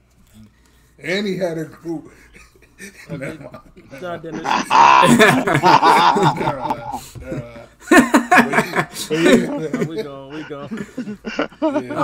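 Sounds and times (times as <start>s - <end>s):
men laughing hard: 2.4s - 12.0s.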